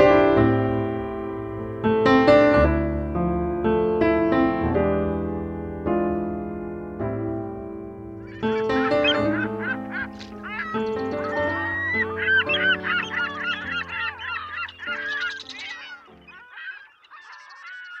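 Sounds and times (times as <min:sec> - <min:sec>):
piano music: 0:00.0 - 0:17.4
geese honking: 0:08.2 - 0:18.0.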